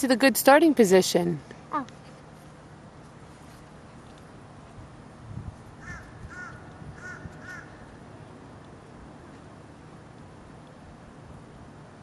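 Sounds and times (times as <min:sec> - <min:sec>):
bird calling: 0:05.8 - 0:08.0.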